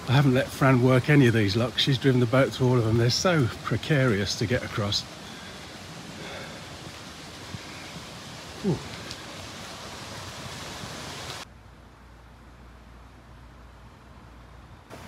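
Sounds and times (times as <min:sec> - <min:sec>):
outdoor background hiss: 0:00.0 - 0:15.0
person saying ooh: 0:08.6 - 0:09.0.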